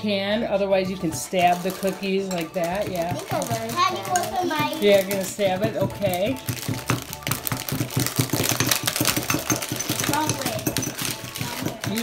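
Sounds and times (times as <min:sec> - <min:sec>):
utensil crushing cookies in a cup: 0:01.2 - 0:12.0.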